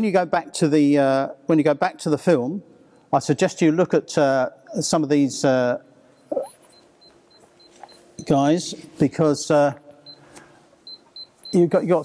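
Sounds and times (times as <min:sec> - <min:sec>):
brief vocal sound: 0:06.3 - 0:06.5
faint high pip: 0:06.3 - 0:06.6.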